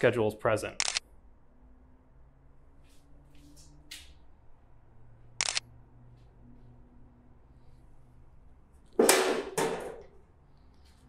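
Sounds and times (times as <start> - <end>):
camera shutter snap: 0.8 - 1.0, 5.4 - 5.7.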